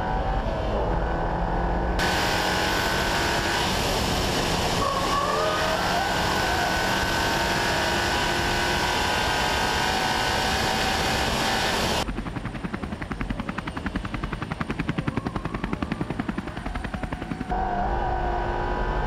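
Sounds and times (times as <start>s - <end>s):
car engine at high revs: 0.0s - 12.1s, 17.5s - 19.0s
road and tyre noise: 0.0s - 12.1s, 17.5s - 19.0s
helicopter rotor chop: 2.0s - 17.6s.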